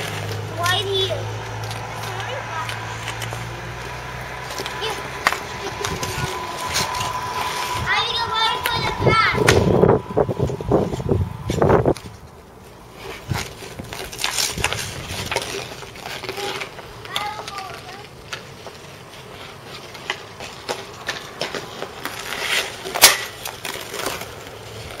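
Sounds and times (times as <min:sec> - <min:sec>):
skates scraping on ice: 0:00.0 - 0:25.0
sticks tapping puck: 0:01.6 - 0:09.7, 0:13.1 - 0:25.0
loud stick crack: 0:04.5 - 0:10.0.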